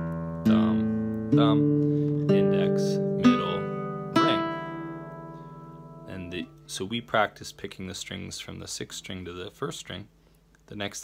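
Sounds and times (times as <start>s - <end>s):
fingerstyle classical guitar notes: 0.0s - 6.7s.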